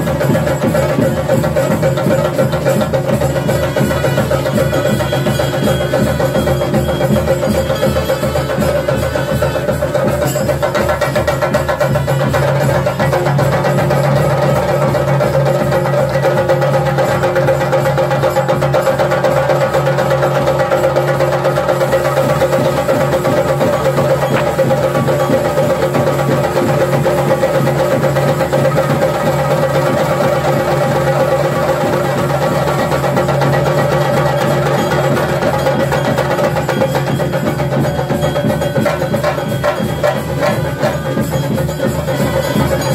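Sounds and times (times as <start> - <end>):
drums rolling with sticks: 0.0 - 42.9.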